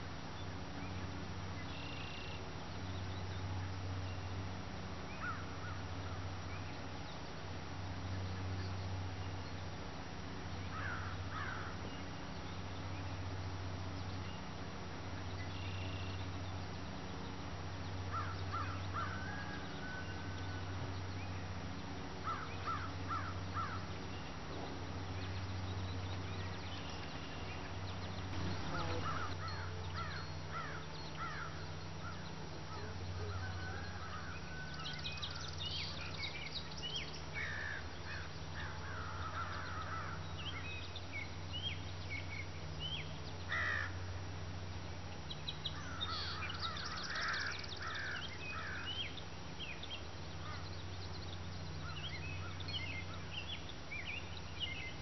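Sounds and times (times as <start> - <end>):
birds calling: 0.0 - 44.3, 45.0 - 55.0
steady low hum: 0.0 - 55.0.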